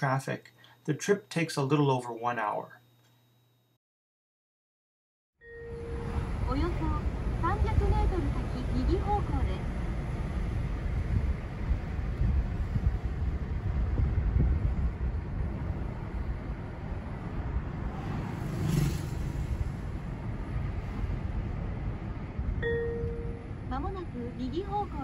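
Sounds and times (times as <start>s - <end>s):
road and engine rumble in car: 5.5s - 25.0s.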